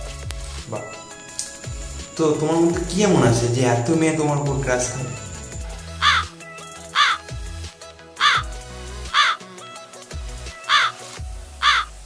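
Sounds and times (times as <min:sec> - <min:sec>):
background music with bass: 0:00.0 - 0:12.0
bird cawing: 0:05.4 - 0:07.3, 0:08.2 - 0:09.6, 0:10.6 - 0:12.0.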